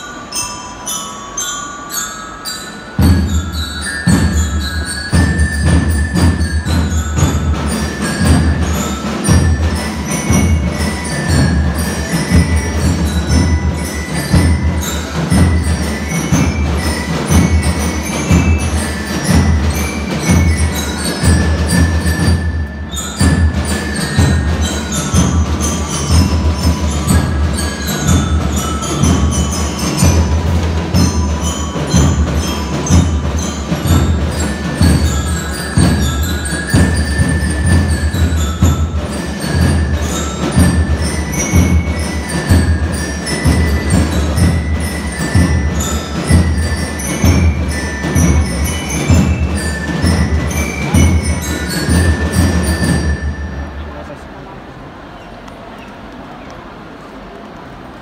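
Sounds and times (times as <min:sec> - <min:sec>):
bell lyres playing melody: 0:00.0 - 0:55.4
steady drum beat: 0:03.0 - 0:53.7.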